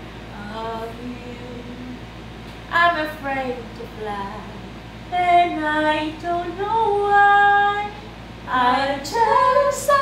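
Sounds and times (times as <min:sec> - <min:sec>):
women singing unaccompanied: 0:00.3 - 0:02.1, 0:02.7 - 0:10.0.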